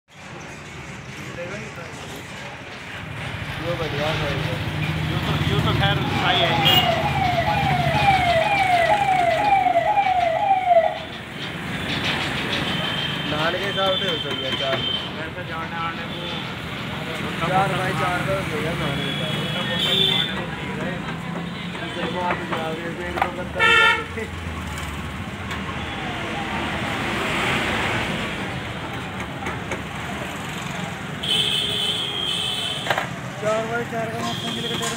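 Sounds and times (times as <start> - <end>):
street noise: 0.1 - 34.9
vehicle passing: 3.0 - 12.9, 24.2 - 31.2
electronic warning tone: 5.9 - 11.1.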